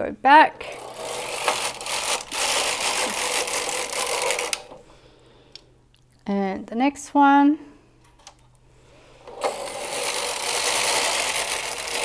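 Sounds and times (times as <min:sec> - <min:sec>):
knitting machine carriage rattle: 0:00.6 - 0:04.8, 0:09.4 - 0:12.0.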